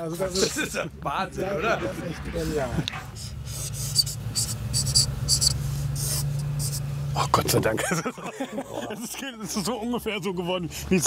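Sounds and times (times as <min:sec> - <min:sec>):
steady low hum: 0:00.0 - 0:09.0
marker scratching on panel: 0:02.9 - 0:06.9.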